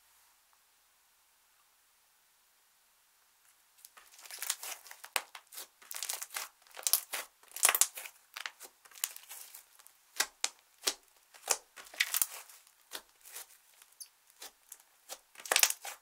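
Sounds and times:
hands squishing sticky slime: 3.9 - 16.0.

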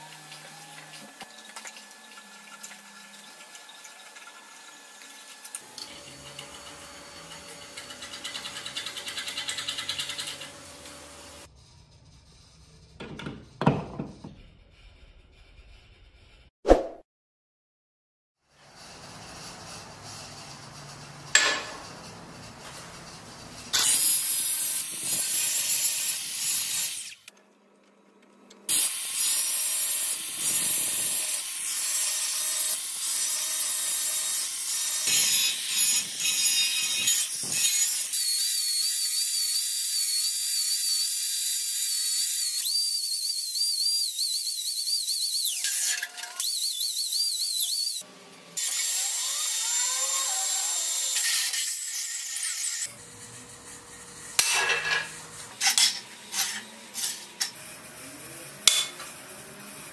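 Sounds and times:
angle grinder whine on steel: 0.0 - 12.9, 18.6 - 27.3, 42.7 - 59.9.

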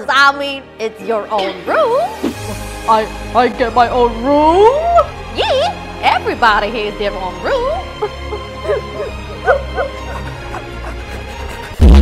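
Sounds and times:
background music: 0.0 - 12.0
person whimpering and sobbing: 7.5 - 11.8.

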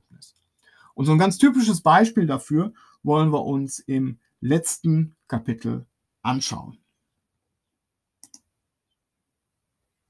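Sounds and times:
computer mouse clicks: 8.2 - 9.0.

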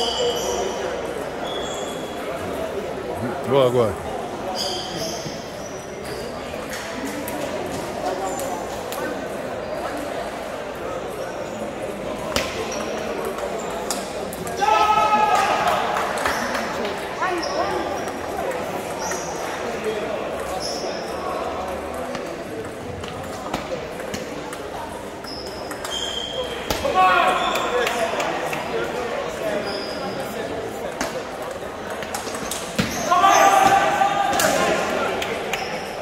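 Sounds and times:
voices in a hall: 0.0 - 36.0
loud shouts: 14.6 - 15.9, 26.8 - 27.7, 33.0 - 35.0.

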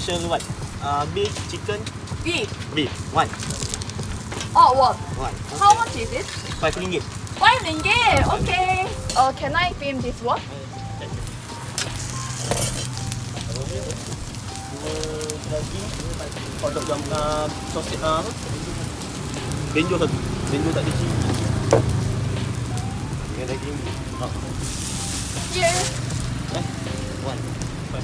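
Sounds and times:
patty sizzling on a griddle: 0.0 - 28.0.

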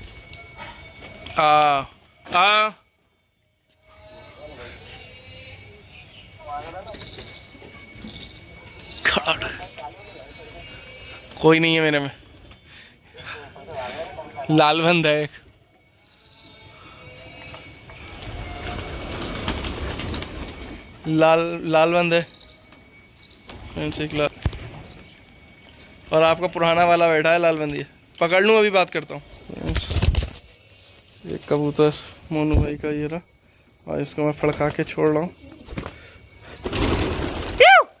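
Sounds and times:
pigeon wings flapping: 18.2 - 20.8, 29.6 - 30.5, 36.6 - 37.6.

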